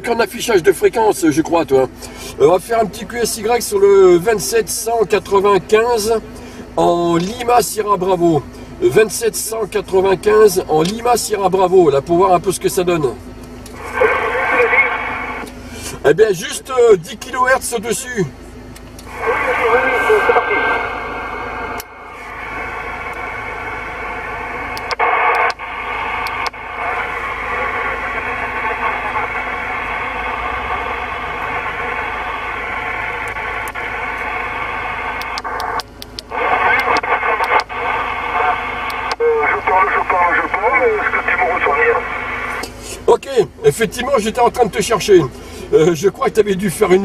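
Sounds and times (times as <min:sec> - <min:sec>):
garbled radio voices: 0:00.0 - 0:18.4, 0:19.0 - 0:47.0
radio hiss: 0:13.7 - 0:18.2, 0:19.0 - 0:47.0
radio clicks: 0:24.6 - 0:29.3, 0:33.1 - 0:42.8.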